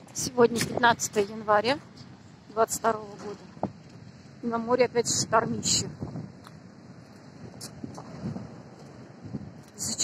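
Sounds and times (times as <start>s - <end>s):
wind and storm surf: 0.0s - 10.0s.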